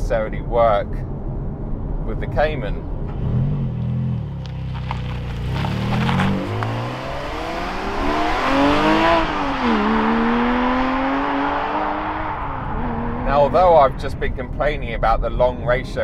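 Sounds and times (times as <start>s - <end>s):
car engine accelerating hard: 3.1s - 14.4s.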